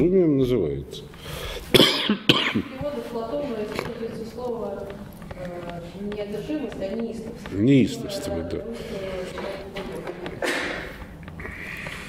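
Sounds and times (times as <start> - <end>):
man coughing: 1.7 - 2.7.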